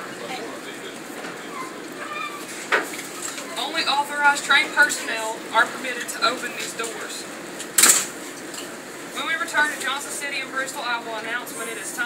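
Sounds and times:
faint voices: 0.0s - 7.4s.

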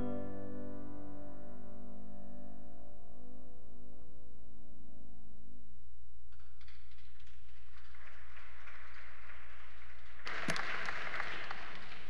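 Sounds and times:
applause: 6.4s - 12.0s.

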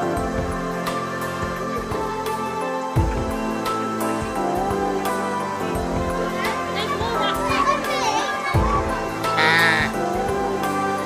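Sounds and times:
background music: 0.0s - 11.0s
children's voices: 6.3s - 10.0s
goat kid bleating: 9.3s - 10.0s.

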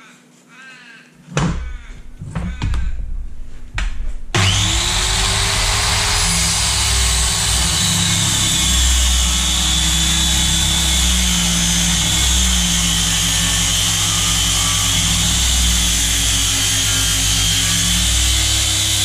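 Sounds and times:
circular saw cutting plywood: 3.9s - 19.0s.

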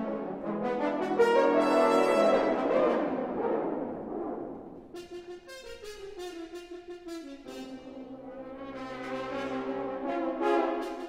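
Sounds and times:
french horn ensemble chord: 0.0s - 3.2s, 8.4s - 11.0s.

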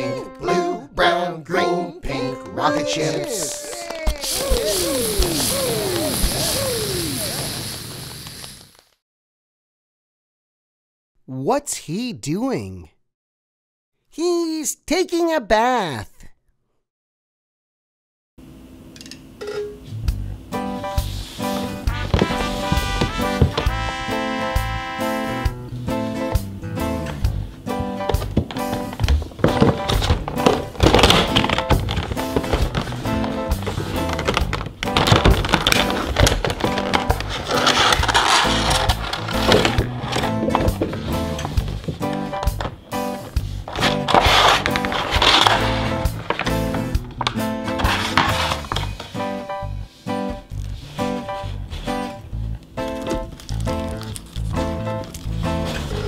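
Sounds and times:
background music: 0.0s - 4.2s, 20.1s - 56.0s
plastic packaging rustling: 28.8s - 40.9s, 43.7s - 46.9s, 53.0s - 55.4s.

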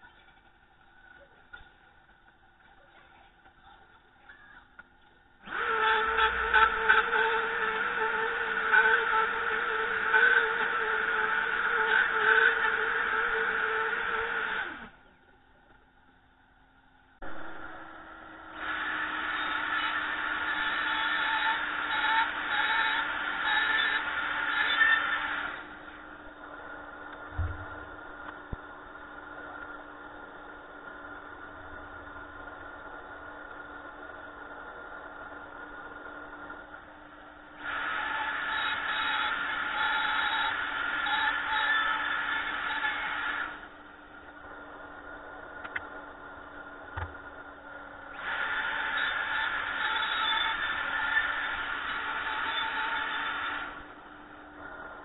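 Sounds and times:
electric router high whine: 5.4s - 15.2s, 17.2s - 55.0s
dust extractor humming: 5.4s - 15.3s, 17.2s - 55.0s.

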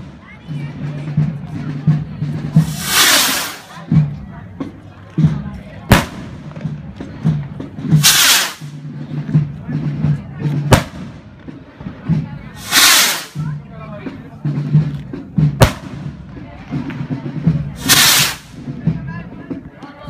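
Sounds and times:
firework bang: 2.6s - 3.7s, 8.0s - 8.7s, 10.7s - 11.2s, 15.6s - 16.0s, 17.8s - 18.5s
firework rocket whoosh: 2.6s - 3.8s, 8.0s - 8.7s, 12.6s - 13.4s, 17.8s - 18.5s.

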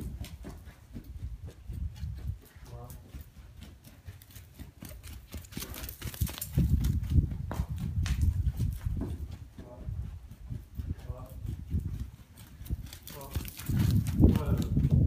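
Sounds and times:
pony hoofbeats on sand: 0.0s - 15.0s.

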